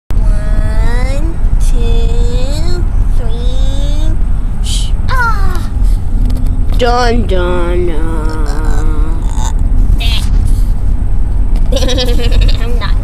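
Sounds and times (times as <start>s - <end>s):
car cabin rumble: 0.1s - 13.0s.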